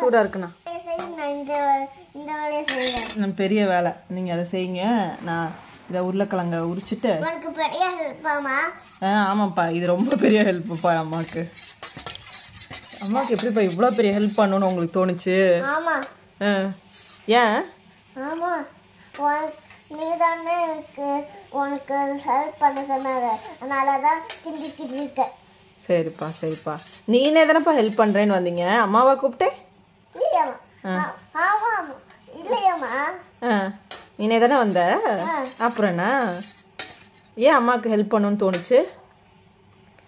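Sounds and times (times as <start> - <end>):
child's sing-song voice: 18.2 - 25.2.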